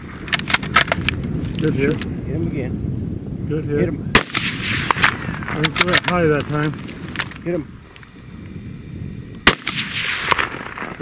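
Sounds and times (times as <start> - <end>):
rifle shot: 4.1 - 7.3, 9.4 - 11.0.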